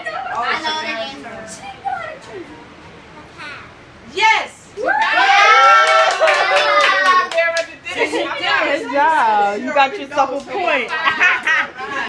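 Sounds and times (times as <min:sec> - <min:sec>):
voices cheering: 0:04.7 - 0:09.2
people clapping: 0:05.0 - 0:08.2, 0:10.3 - 0:11.6.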